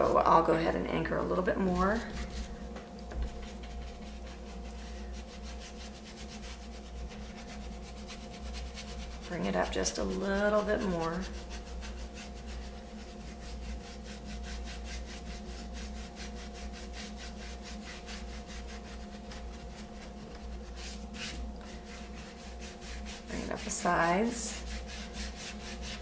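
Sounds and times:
faint steady hum: 0:00.0 - 0:26.0
paintbrush scrubbing on wood: 0:01.1 - 0:26.0.

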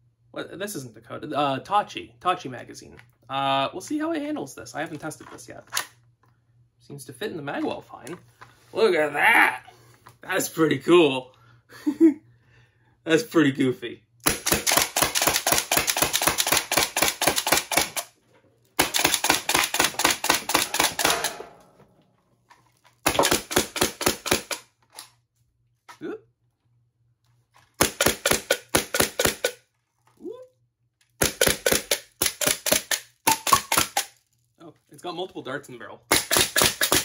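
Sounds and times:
toy blaster firing rapid pops: 0:14.2 - 0:18.1, 0:18.8 - 0:21.3, 0:23.0 - 0:24.7, 0:27.8 - 0:29.6, 0:31.2 - 0:34.2, 0:36.1 - 0:37.0.

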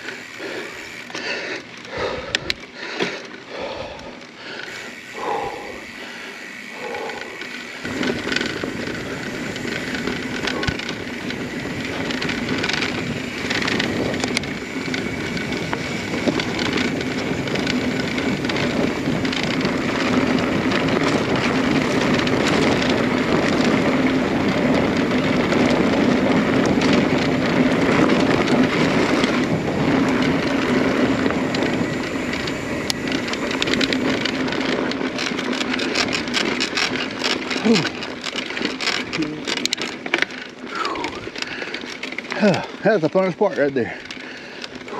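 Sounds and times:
bike rattling: 0:00.0 - 0:44.9
bike tyres on gravel: 0:00.0 - 0:44.9.

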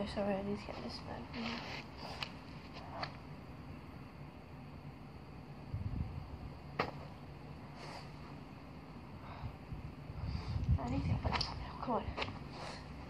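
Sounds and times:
crutches thumping on turf: 0:06.8 - 0:07.1.

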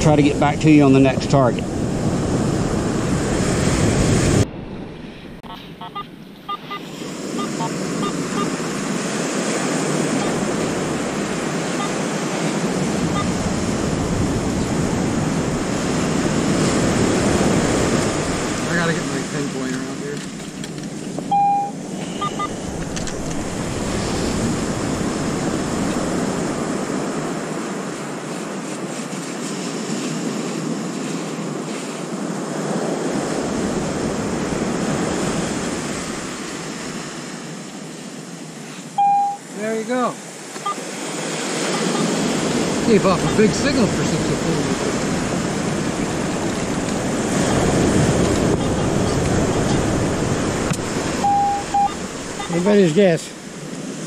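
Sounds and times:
wind on microphone: 0:00.0 - 0:19.4, 0:20.3 - 0:38.6, 0:41.1 - 0:52.5
surf on sandy beach: 0:00.0 - 0:54.0
metal detector tone: 0:05.4 - 0:08.6, 0:10.2 - 0:10.4, 0:11.7 - 0:12.0, 0:13.0 - 0:13.4, 0:21.3 - 0:22.6, 0:39.0 - 0:39.4, 0:41.7 - 0:42.1, 0:51.2 - 0:52.6.

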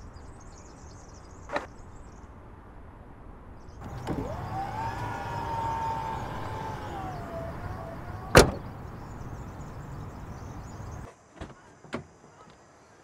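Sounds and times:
electric tailgate motor whining: 0:03.8 - 0:11.1
tailgate latching shut clunk: 0:03.8 - 0:11.1.

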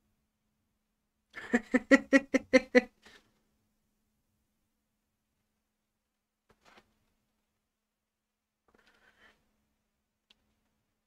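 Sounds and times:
man laughing: 0:01.4 - 0:02.9.

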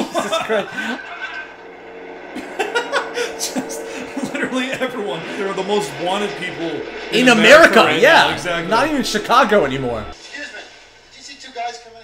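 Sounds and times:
men laughing: 0:00.0 - 0:06.0
low film soundtrack: 0:00.0 - 0:11.2.

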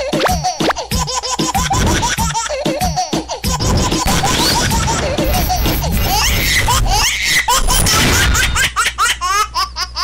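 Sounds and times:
high-pitched laughter effect: 0:00.0 - 0:10.0.

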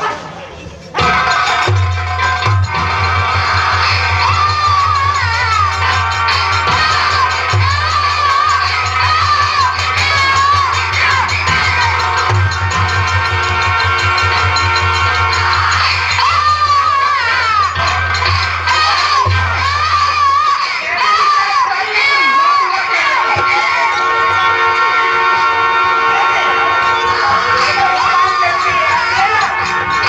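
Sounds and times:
audience crowd noise: 0:00.0 - 0:30.0
drumming: 0:00.0 - 0:30.0
ornamented melody line: 0:01.0 - 0:30.0.

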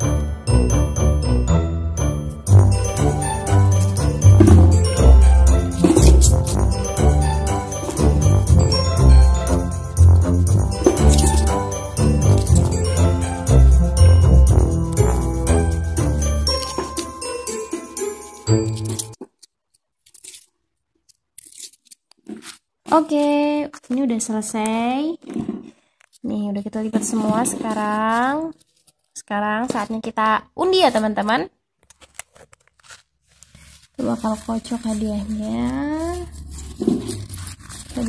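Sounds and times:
paper slips rustling: 0:02.6 - 0:19.2, 0:31.8 - 0:38.0.

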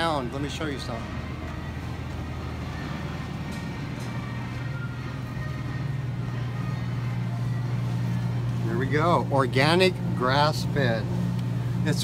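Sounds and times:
faint background music: 0:00.0 - 0:12.0
refrigerator case humming: 0:00.0 - 0:12.0
store hubbub: 0:00.0 - 0:12.0.

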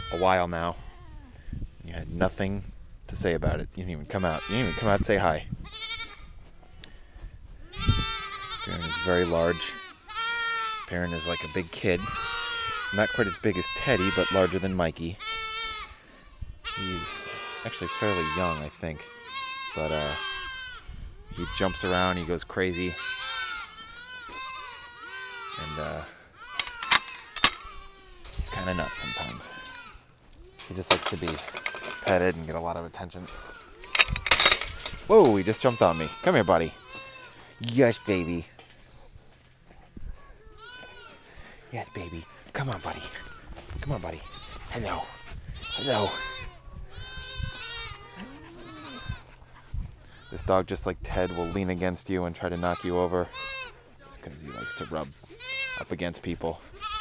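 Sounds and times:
goat bleating: 0:00.0 - 0:01.2, 0:04.1 - 0:06.3, 0:07.6 - 0:39.3, 0:40.2 - 0:57.0.

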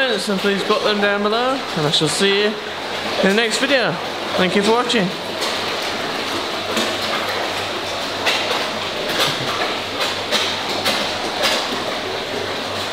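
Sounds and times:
fish splashing in pond water: 0:00.0 - 0:12.9.

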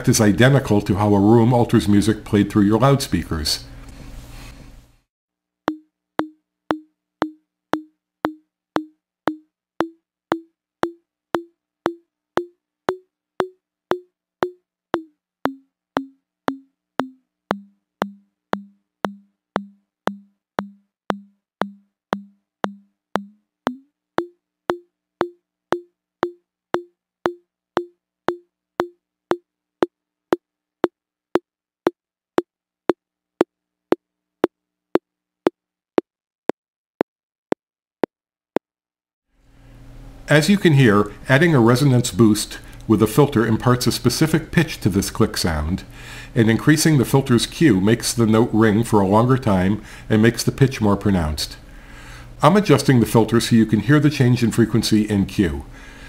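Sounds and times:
electronic clicks with resonant ringing: 0:05.7 - 0:29.4.

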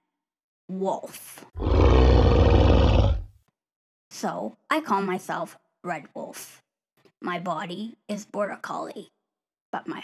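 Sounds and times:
deep animal growl-roar: 0:01.6 - 0:03.3.

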